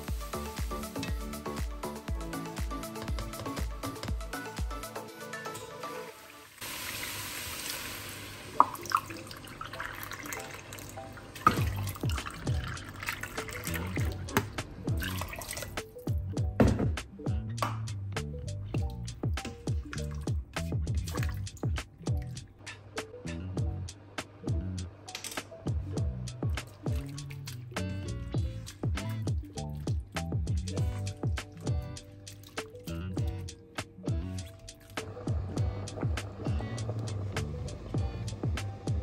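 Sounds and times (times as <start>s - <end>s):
background music: 0.0s - 6.6s, 8.5s - 39.0s
water running from tap: 5.8s - 15.8s.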